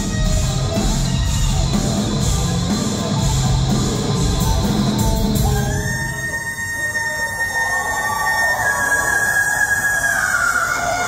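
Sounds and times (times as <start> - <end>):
live rock band high note: 0.0 - 6.7.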